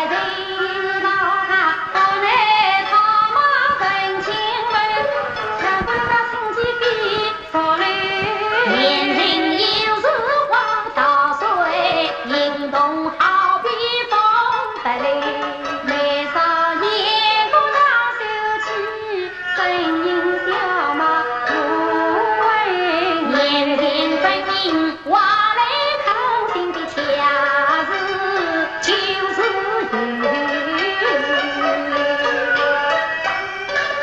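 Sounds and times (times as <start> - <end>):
woman singing opera: 0.0 - 32.7
instrumental accompaniment: 0.0 - 34.0.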